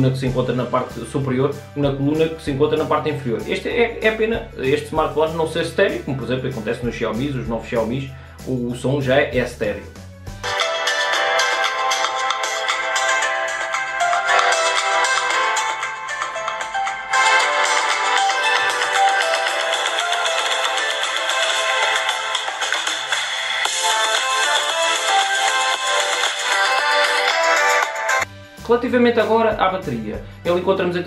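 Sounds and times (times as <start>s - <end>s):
pop music through phone speaker: 10.2s - 28.7s.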